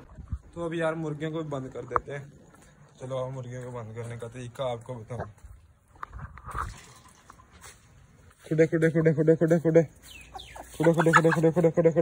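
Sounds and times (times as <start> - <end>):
chickens clucking: 0.0 - 12.0.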